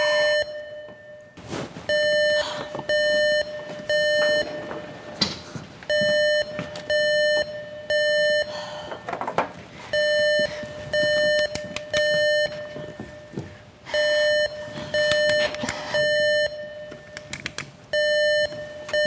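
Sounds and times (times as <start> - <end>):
fire alarm beeping: 0.0 - 5.2, 5.9 - 8.8, 9.9 - 17.3, 17.9 - 19.0.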